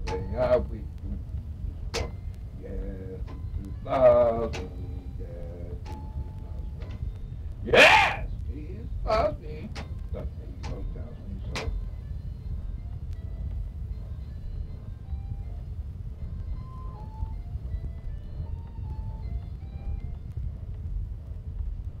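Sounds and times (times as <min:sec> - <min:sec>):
sharp record clicks: 0:00.0 - 0:22.0
vinyl record surface noise: 0:00.0 - 0:22.0.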